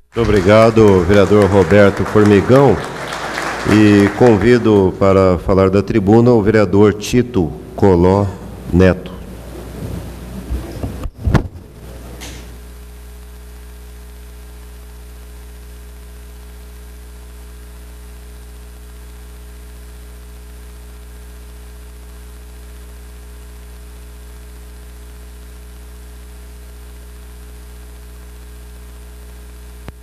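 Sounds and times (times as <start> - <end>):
electrical mains hum: 0.0 - 30.0
faint microphone hiss: 0.0 - 30.0.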